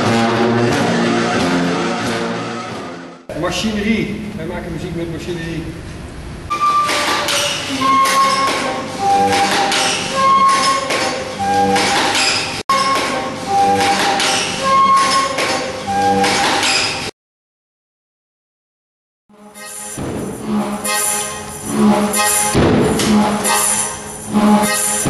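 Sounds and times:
mechanical instrument music: 19.5s - 25.0s.

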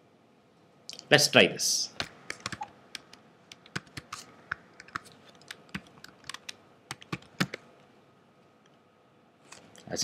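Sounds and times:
computer keyboard typing: 2.0s - 7.6s.

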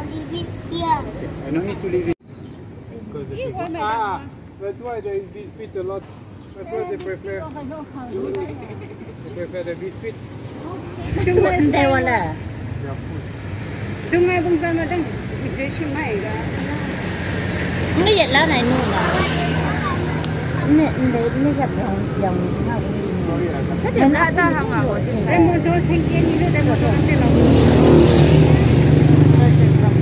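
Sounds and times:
low hum of street traffic: 0.0s - 30.0s.

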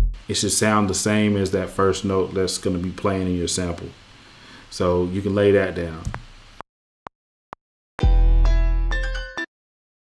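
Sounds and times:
voice: 0.3s - 4.0s, 4.7s - 6.2s.

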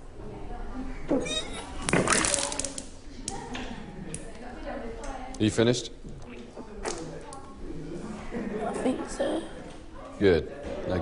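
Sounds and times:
vomit splattering: 1.8s - 2.9s.

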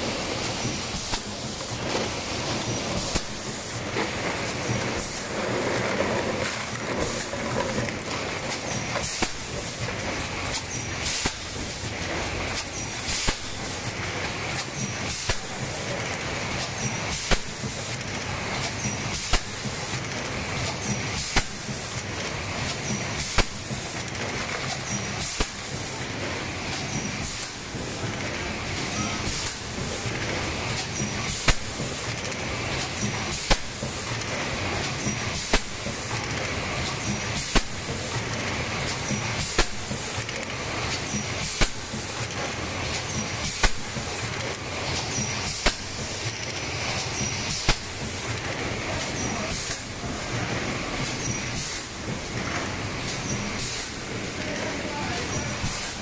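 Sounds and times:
steady machine noise: 0.0s - 16.6s
compressed air hissing: 52.8s - 54.4s.

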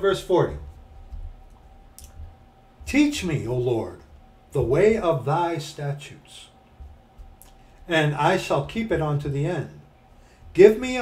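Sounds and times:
person speaking: 0.0s - 0.9s, 2.0s - 11.0s
low room hum: 0.0s - 11.0s.

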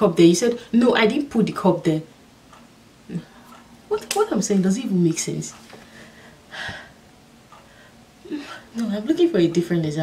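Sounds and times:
woman speaking: 0.0s - 2.1s, 3.1s - 5.6s, 8.3s - 10.0s.

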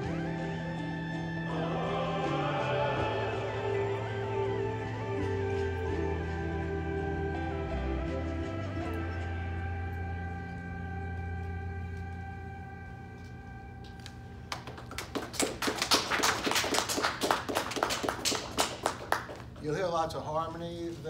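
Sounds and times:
recorded song chord from laptop: 1.4s - 8.3s
audience clapping: 13.9s - 19.6s.

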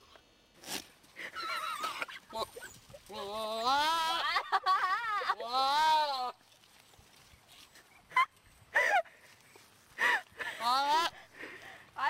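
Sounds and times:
goat bleating: 2.4s - 4.3s, 5.4s - 6.4s.

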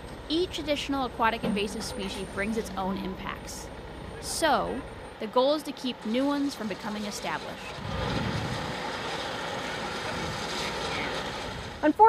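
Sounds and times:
low even rumble: 0.7s - 5.2s.

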